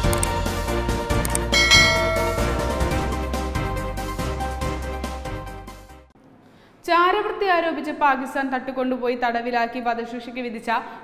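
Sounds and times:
background music: 0.0s - 6.1s
notification bell ding: 1.6s - 3.2s.

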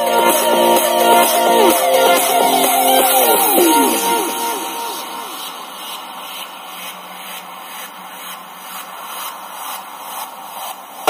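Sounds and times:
music from small speaker: 0.0s - 7.4s.

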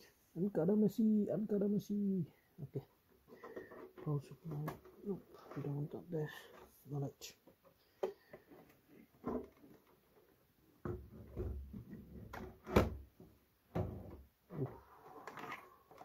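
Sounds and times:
cables knocking and scraping on case: 3.2s - 16.0s.

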